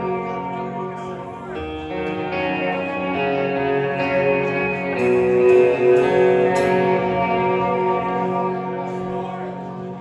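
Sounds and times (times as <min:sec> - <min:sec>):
electric guitar chords: 0:00.0 - 0:10.0
rock band playing live: 0:00.0 - 0:10.0.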